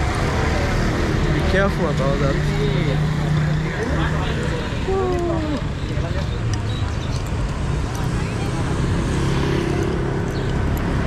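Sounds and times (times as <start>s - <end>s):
low street rumble: 0.0s - 11.0s.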